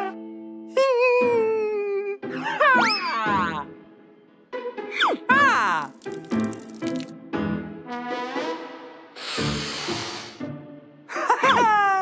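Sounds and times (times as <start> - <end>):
light background music: 0.0 - 12.0
cartoon hissing sound effect: 9.2 - 10.4.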